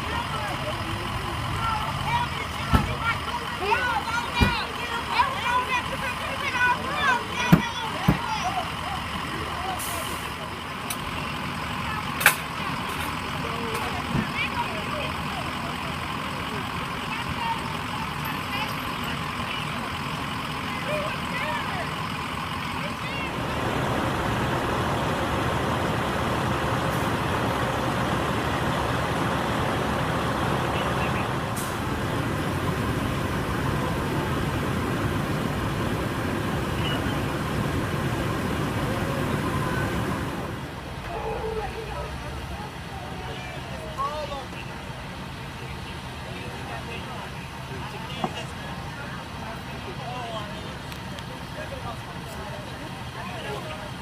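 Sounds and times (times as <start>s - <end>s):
engine running: 0.0s - 54.0s
indistinct voices: 0.0s - 54.0s
steady vehicle noise: 0.0s - 54.0s.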